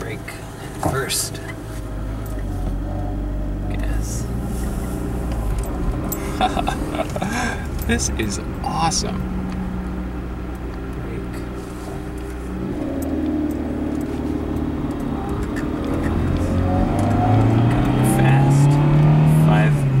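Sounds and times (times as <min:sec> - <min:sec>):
car engine accelerating: 0:00.0 - 0:20.0.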